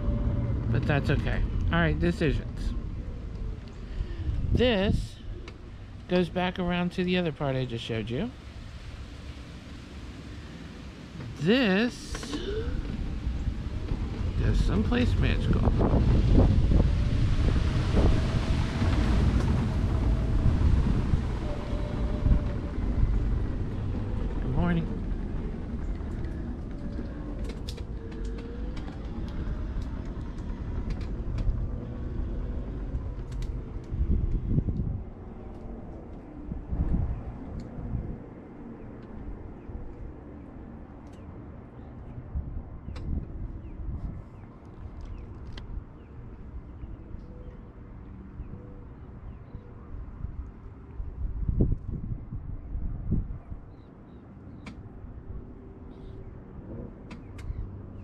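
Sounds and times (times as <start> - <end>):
wind rumbling on microphone: 0.0 - 7.2, 8.0 - 58.0
mobility scooter rolling on boardwalk: 0.0 - 52.4.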